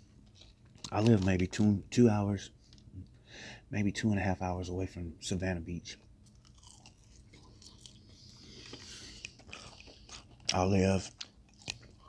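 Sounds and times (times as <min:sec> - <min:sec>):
low steady hum: 0:00.0 - 0:12.0
faint chewing: 0:00.1 - 0:01.7, 0:06.2 - 0:12.0.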